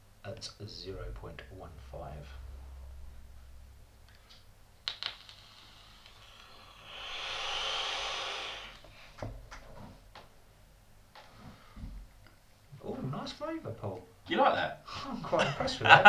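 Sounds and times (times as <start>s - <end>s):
airy hiss of vape inhale: 5.3s - 9.1s.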